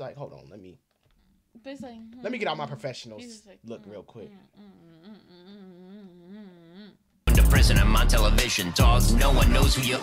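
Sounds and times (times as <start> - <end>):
person humming: 3.6 - 7.0.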